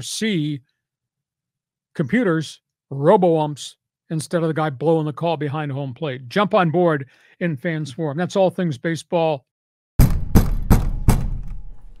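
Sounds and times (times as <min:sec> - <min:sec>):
heavy percussive hits: 0:10.0 - 0:12.0
low boom: 0:10.0 - 0:12.0.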